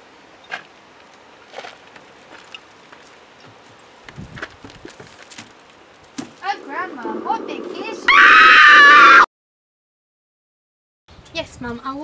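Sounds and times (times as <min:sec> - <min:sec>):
low steady background noise: 0:00.0 - 0:08.1.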